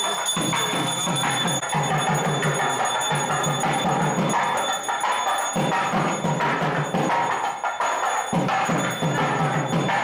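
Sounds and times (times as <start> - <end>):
music with bells and percussion: 0.0 - 10.0.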